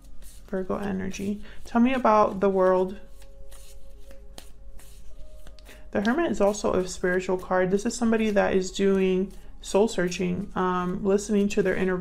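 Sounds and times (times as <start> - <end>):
cards being shuffled: 0.0 - 12.0
soft background music: 0.0 - 12.0.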